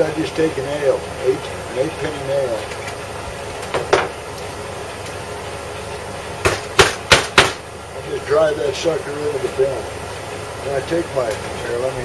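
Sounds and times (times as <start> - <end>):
hammer hitting nail into wood: 6.4 - 7.6.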